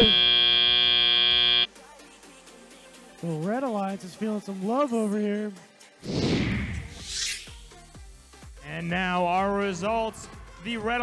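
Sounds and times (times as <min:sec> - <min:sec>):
loud steady buzzer: 0:00.0 - 0:01.7.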